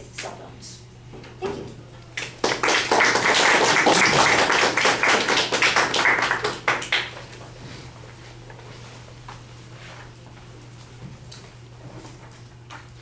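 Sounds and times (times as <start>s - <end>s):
people clapping: 2.2s - 7.4s.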